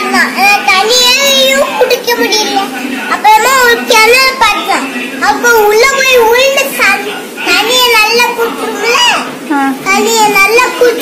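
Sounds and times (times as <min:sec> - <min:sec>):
young boy speaking: 0:00.0 - 0:11.0.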